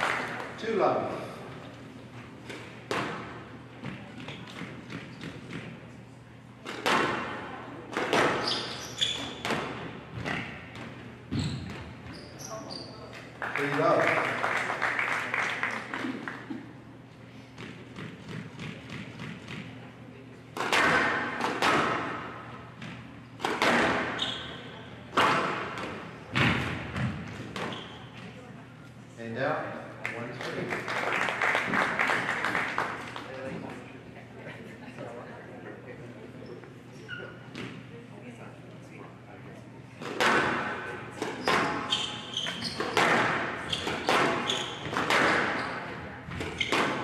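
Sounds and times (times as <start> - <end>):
squash ball hitting rackets and walls: 2.4 - 5.9, 6.6 - 12.1, 17.5 - 19.8, 20.5 - 28.4, 39.9 - 47.0.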